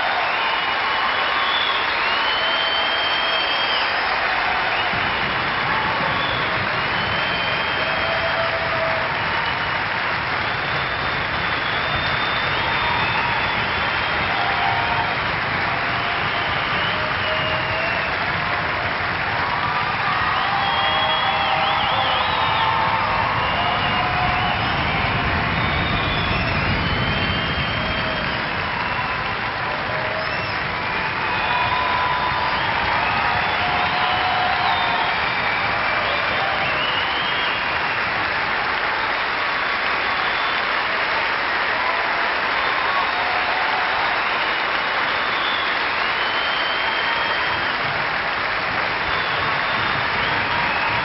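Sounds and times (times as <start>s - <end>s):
whistles: 0.0s - 38.2s, 39.0s - 41.0s, 42.6s - 48.0s, 48.9s - 51.0s
audience applauding and cheering: 0.0s - 51.0s
shouts from audience: 0.0s - 51.0s.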